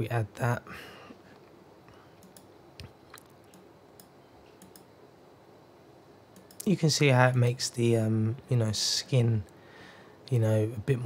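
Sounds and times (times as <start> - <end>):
computer mouse clicks: 2.2 - 4.9, 6.4 - 6.7.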